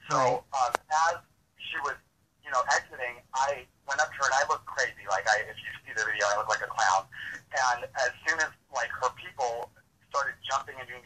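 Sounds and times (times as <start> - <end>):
person talking: 0.0 - 11.0.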